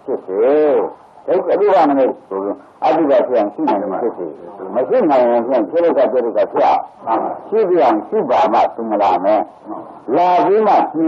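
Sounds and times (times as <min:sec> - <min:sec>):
elderly man preaching: 0:00.0 - 0:11.0.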